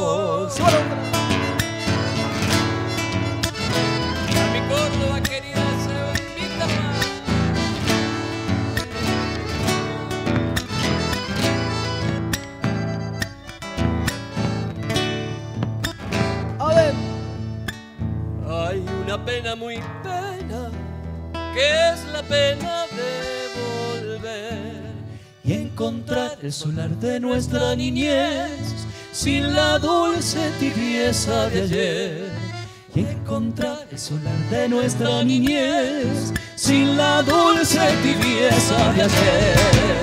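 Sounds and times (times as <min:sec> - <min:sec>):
acoustic guitars strumming: 0:00.0 - 0:40.0.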